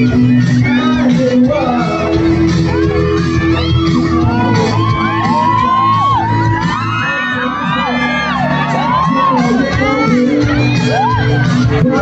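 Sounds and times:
crowd screaming and cheering: 0.0 - 12.0
live amplified music: 0.0 - 12.0.

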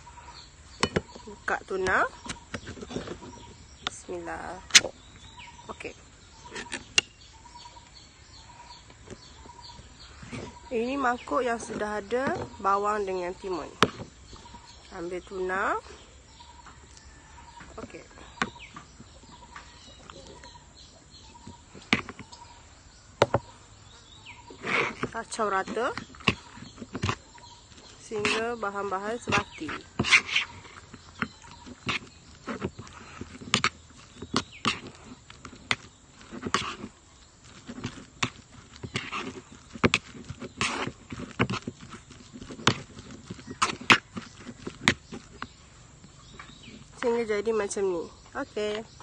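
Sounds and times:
spoon scraping bowl: 24.5 - 45.6.

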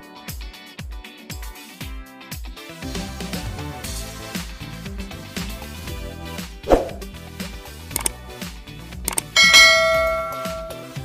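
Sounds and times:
quick clicks: 8.0 - 8.2, 9.1 - 9.4
notification bell chime: 9.4 - 11.0.

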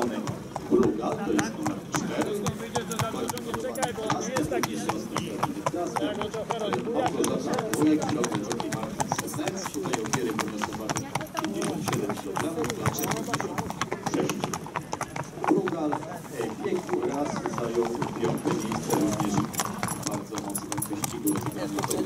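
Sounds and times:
horse hooves clip-clopping: 0.0 - 22.0.

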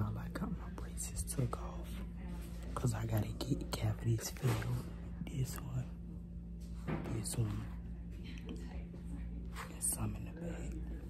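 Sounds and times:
person whispering: 0.0 - 6.0, 9.6 - 11.0
steady low hum: 0.0 - 11.0.

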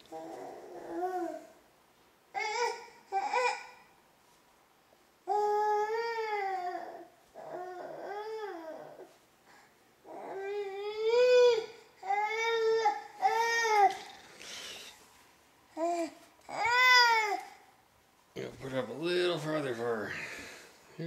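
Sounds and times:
baby crying: 5.3 - 9.1, 10.0 - 14.2, 15.8 - 17.6.

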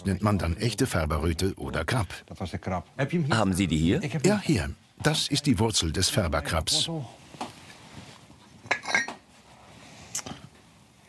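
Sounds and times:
glass jar clinks and knocks: 8.6 - 9.2.

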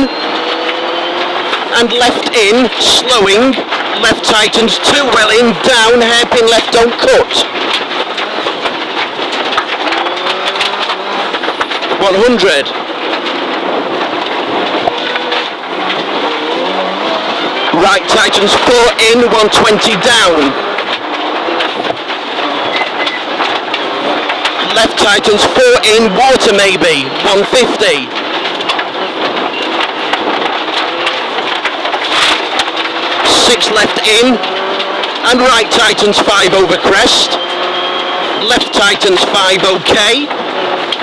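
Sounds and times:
rally car engine under load: 0.0 - 41.0
tyres rushing on gravel: 0.0 - 41.0.

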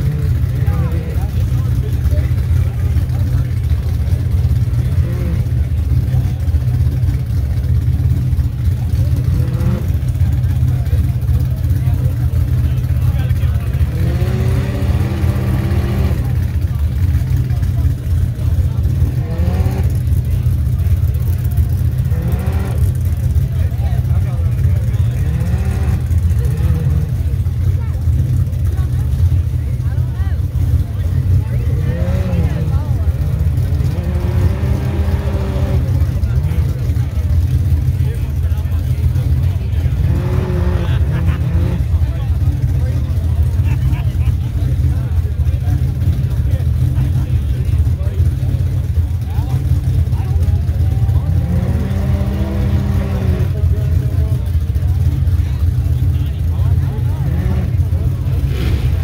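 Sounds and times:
buggy engine revving hard: 0.0 - 59.0
heavy low rumble: 0.0 - 59.0.

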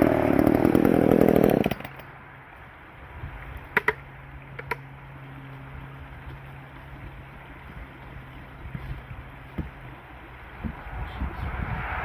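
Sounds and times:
small engine idling: 0.0 - 2.1
boots stepping onto logs: 6.2 - 9.8.

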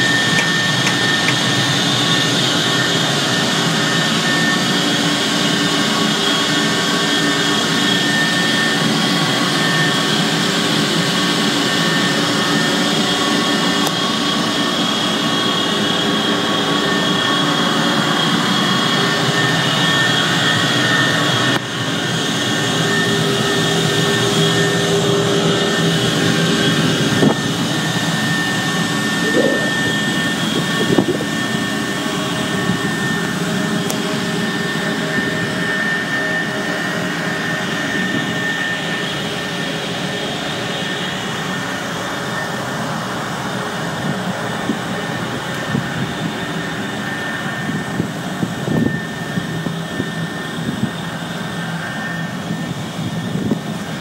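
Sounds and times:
machinery drone with whine: 0.0 - 54.0.

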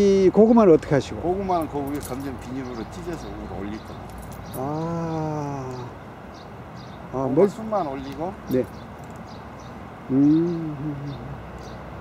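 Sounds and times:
man humming: 10.1 - 11.5.

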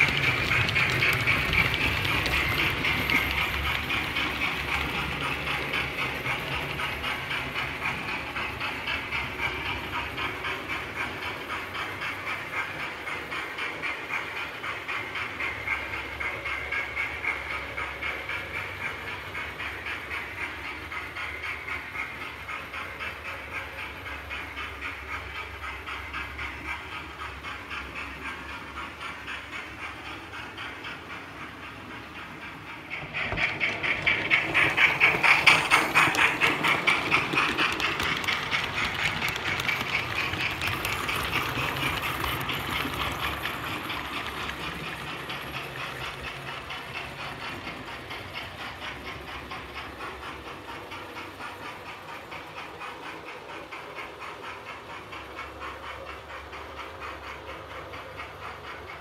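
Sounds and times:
steam locomotive chuffing: 0.0 - 59.0.

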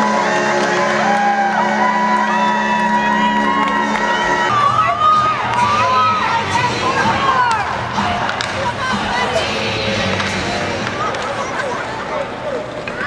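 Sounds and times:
children shouting and cheering: 0.0 - 9.4
arena music with held notes: 0.0 - 13.0.

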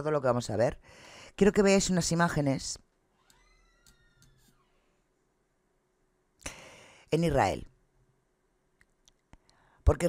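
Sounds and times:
cat meow: 3.3 - 4.6.

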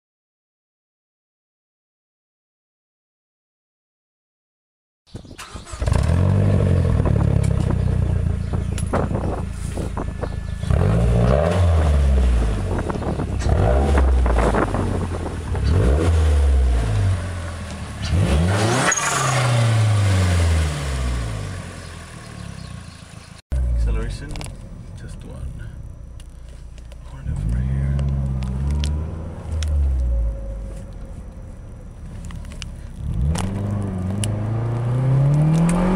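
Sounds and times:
car engine revving: 5.4 - 35.9.

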